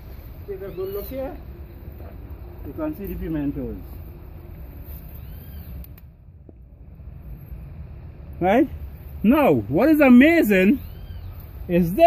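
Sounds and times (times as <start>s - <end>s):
low steady rumble: 0.0s - 12.0s
faint clicks: 5.8s - 6.6s.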